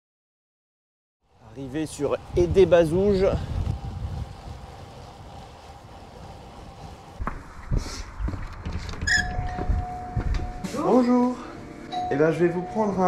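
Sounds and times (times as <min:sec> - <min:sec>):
wind and road rumble: 0:01.2 - 0:11.8
short squeak: 0:09.0 - 0:09.6
electronic door entry chime: 0:09.1 - 0:10.7, 0:11.9 - 0:13.0.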